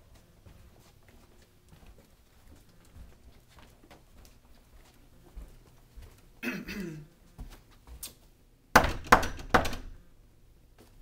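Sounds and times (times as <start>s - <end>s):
knocks on wooden door: 8.8s - 10.0s.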